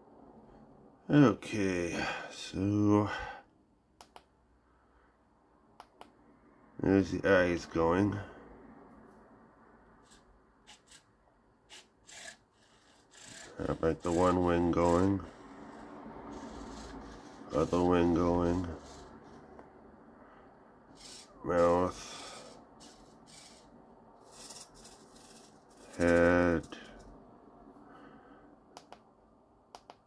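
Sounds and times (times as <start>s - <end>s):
servo motor whir: 10.0s - 11.0s, 11.7s - 14.2s, 14.8s - 19.5s, 20.9s - 21.4s, 22.1s - 26.4s
faint scratchy rubbing: 21.0s - 27.0s.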